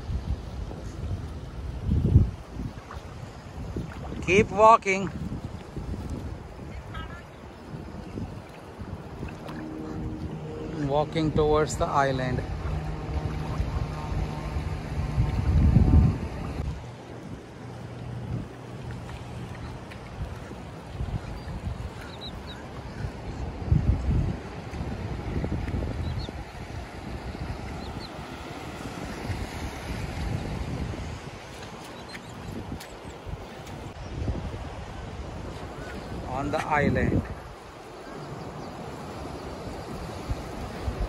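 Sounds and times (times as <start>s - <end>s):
surf washing: 0.0s - 41.0s
wind buffeting microphone: 0.0s - 41.0s.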